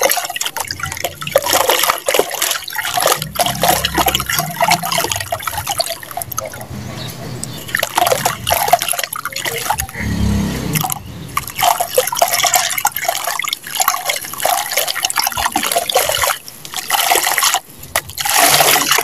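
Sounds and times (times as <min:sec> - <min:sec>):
water splashing and dripping: 0:00.0 - 0:19.0.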